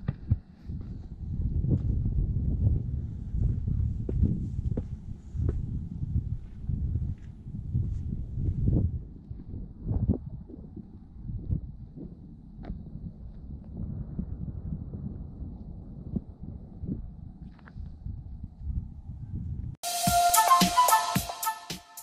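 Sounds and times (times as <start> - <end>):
wind buffeting microphone: 0.0 - 19.8
footsteps on concrete: 4.0 - 5.7.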